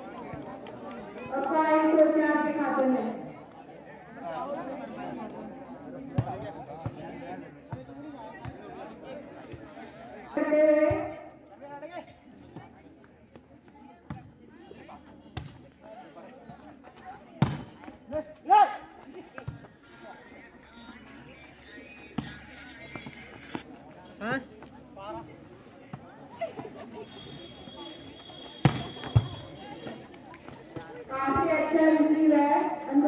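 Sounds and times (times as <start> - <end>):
spectators chattering: 0.0 - 33.0
volleyball slaps: 28.6 - 29.3.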